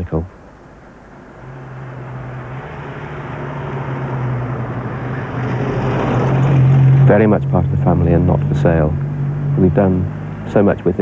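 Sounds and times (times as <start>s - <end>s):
car engine approaching: 0.3s - 11.0s.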